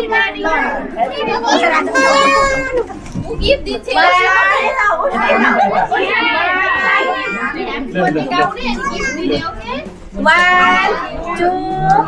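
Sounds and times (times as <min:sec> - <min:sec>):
people and children talking: 0:00.0 - 0:12.0.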